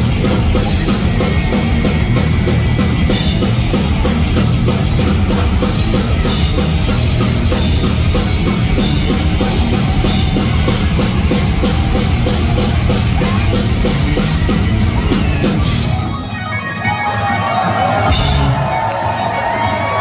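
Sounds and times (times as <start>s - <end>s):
drum kit beat: 0.0s - 20.0s
loud electric guitars: 0.0s - 20.0s.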